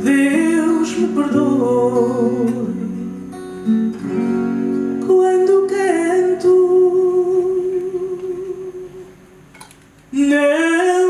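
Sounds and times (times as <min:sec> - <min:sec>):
woman singing: 0:00.0 - 0:03.0, 0:05.0 - 0:09.1, 0:10.2 - 0:11.0.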